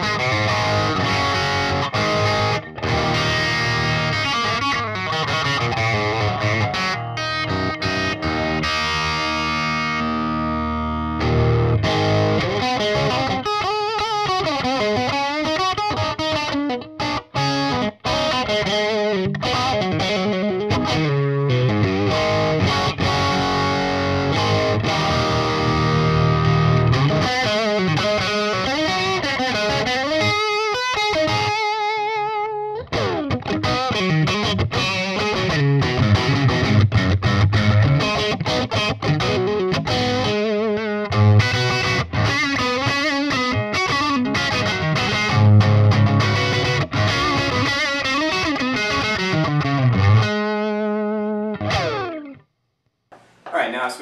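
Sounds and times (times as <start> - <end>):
distorted electric guitar: 0.0 - 52.4.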